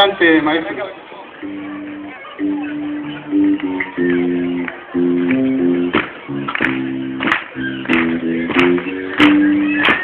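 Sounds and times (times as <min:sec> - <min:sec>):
guitar chords: 0:01.4 - 0:10.0
rock band playing: 0:01.4 - 0:10.0.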